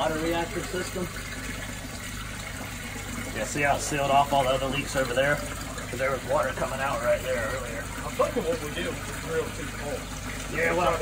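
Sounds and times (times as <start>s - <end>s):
water rushing in a manhole: 0.0s - 11.0s.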